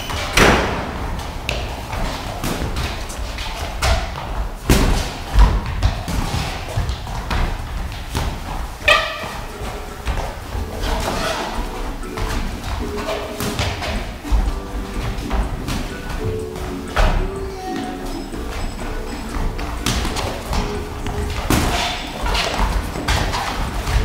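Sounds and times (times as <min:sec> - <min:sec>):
boxing gloves thudding: 0:19.5 - 0:24.0.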